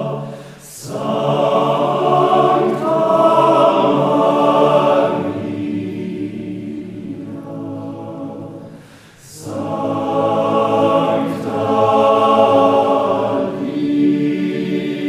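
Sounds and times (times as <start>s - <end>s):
mixed choir singing a cappella: 0.0s - 15.0s.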